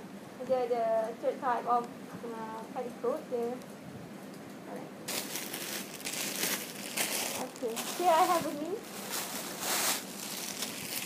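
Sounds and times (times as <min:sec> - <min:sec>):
plastic wrapping crinkling: 0:05.1 - 0:11.0.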